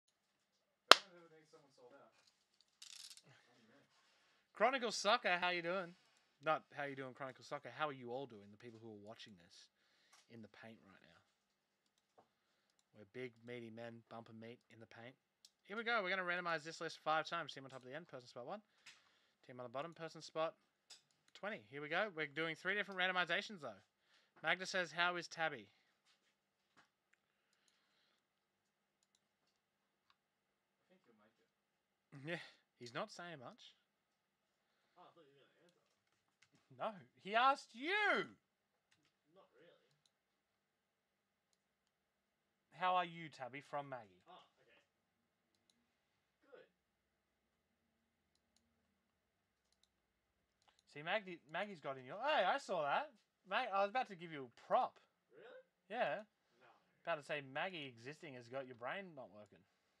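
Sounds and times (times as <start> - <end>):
faint clicks: 26.8 - 30.2, 45.5 - 45.8, 49.6 - 50.9.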